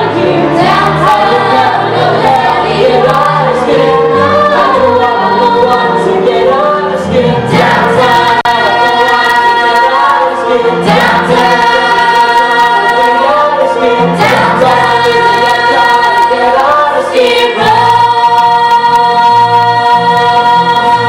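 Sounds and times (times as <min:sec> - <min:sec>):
chorus singing: 0:00.0 - 0:21.0.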